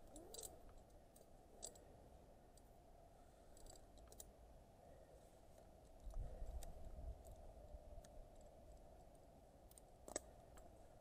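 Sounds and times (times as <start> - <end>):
climbing gear clicking: 0.0 - 1.9, 3.5 - 4.3.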